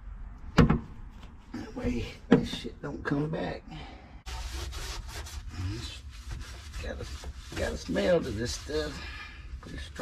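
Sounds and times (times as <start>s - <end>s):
rag wiping on steel: 4.3s - 10.0s
person speaking: 6.7s - 10.0s.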